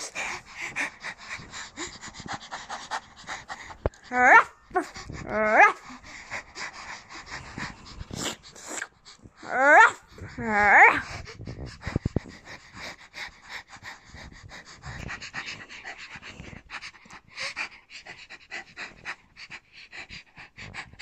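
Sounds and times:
girl panting rapidly: 0.0 - 21.0.

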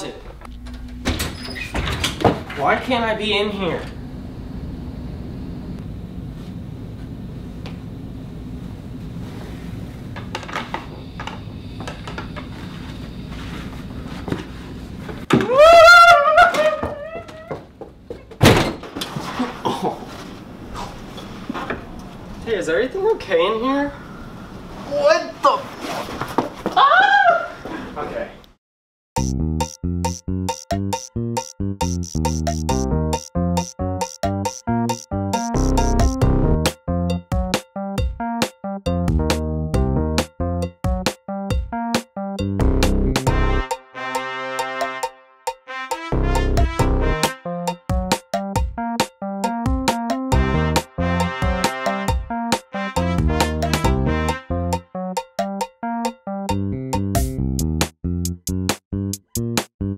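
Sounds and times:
cabinet door opening: 0.8 - 2.6, 18.4 - 19.3
person's animal-like cry: 15.4 - 17.6.

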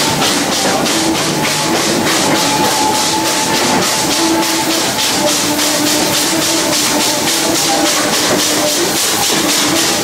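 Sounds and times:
steam locomotive chuffing: 0.0 - 10.0.

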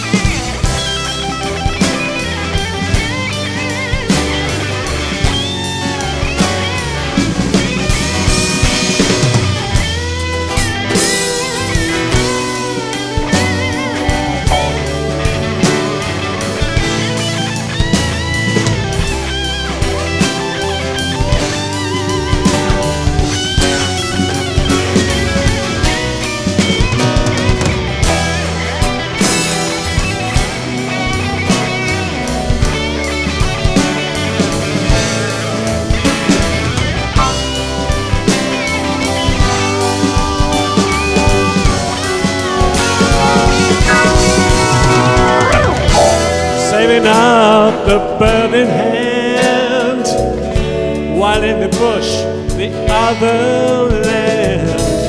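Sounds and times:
bass line: 0.0 - 55.0
drum kit: 0.0 - 55.0
guitar lead with bending notes: 0.0 - 55.0.

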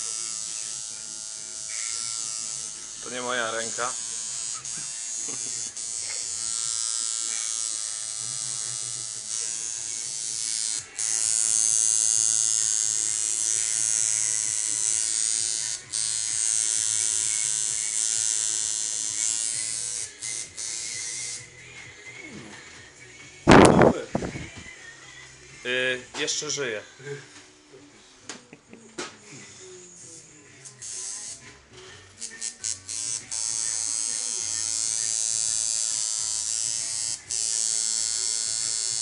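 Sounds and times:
tattoo machine buzzing: 0.0 - 21.6, 30.6 - 31.6, 32.2 - 39.0.

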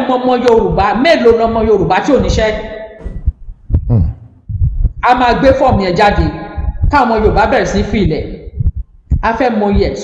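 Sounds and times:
low dull thumps: 0.6 - 10.0.

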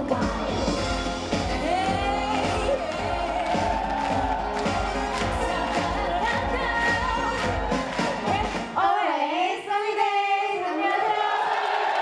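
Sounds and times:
amplified pop backing track: 0.0 - 9.1.

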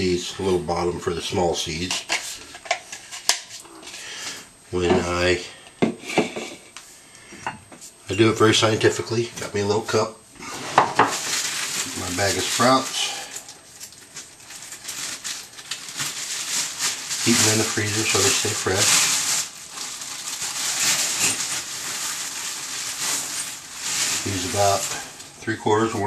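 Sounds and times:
plastic bag crinkling: 10.4 - 26.0.

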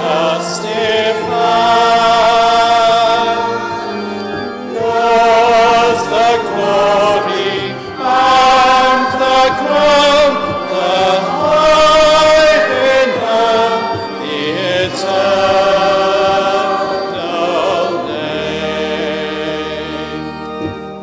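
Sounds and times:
person singing slow chant: 0.0 - 20.3.

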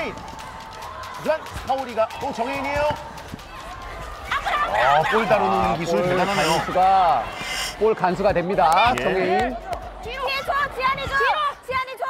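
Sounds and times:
voices exclaiming: 3.7 - 8.0.

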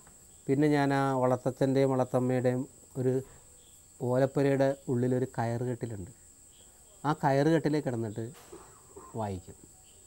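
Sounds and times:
faint high-pitched whine: 0.0 - 10.0
man speaking: 0.5 - 3.4, 4.0 - 6.2, 6.8 - 8.4, 9.0 - 9.6.

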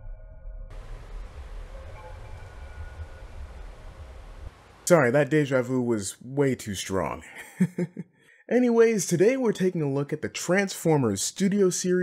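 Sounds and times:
low rumble: 0.0 - 4.9.

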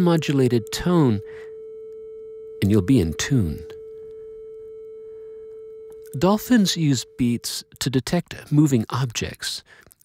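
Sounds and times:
steady sine tone: 0.0 - 7.8.

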